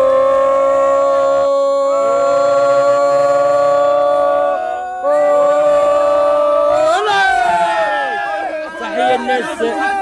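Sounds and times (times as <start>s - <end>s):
men chanting held aah: 0.0s - 10.0s.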